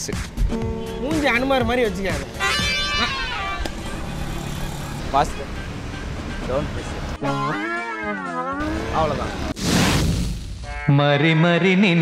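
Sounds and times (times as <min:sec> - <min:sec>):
road traffic rumble: 0:00.0 - 0:09.6
rising voice-like call: 0:02.4 - 0:03.6.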